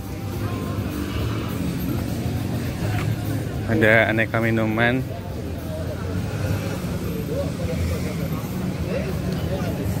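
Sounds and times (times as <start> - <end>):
distant voices chattering: 0.0 - 10.0
low street rumble: 0.0 - 10.0.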